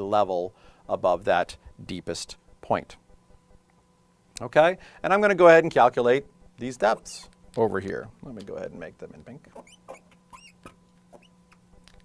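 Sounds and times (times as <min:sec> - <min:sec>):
faint electrical hum: 0:00.0 - 0:12.0
marker squeaking on glass: 0:09.5 - 0:11.4.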